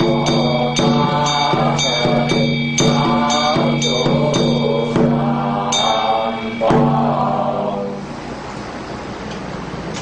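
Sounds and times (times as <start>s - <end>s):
bell ringing: 0.0s - 7.4s
drum stroke: 0.0s - 8.0s
person chanting: 0.0s - 8.1s.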